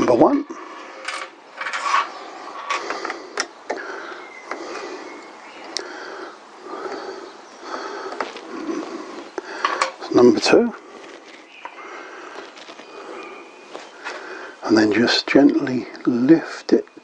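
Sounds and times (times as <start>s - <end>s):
scraping and handling noise: 0.7s - 3.8s, 8.1s - 14.4s.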